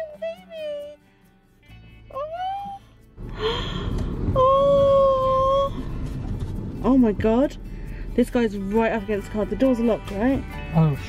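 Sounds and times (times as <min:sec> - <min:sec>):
background music: 0:00.0 - 0:11.0
person exclaiming oh and ooh: 0:02.1 - 0:02.8, 0:04.4 - 0:05.8.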